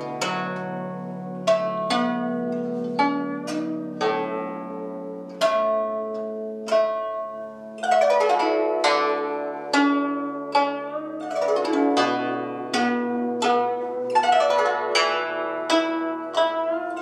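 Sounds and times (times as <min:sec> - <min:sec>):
guzheng plucked notes: 0:00.0 - 0:17.0.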